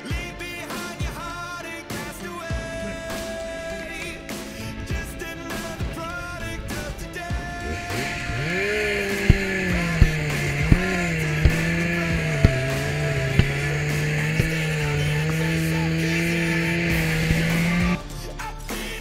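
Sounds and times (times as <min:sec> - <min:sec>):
power saw cutting roof: 0:01.9 - 0:18.0.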